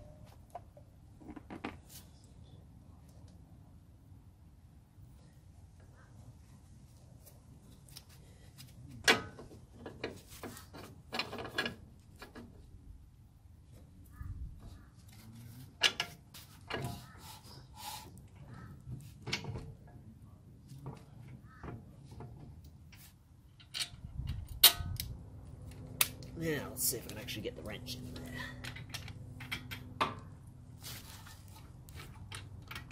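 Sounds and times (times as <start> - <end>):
metallic clicks and knocks: 31.9 - 32.9.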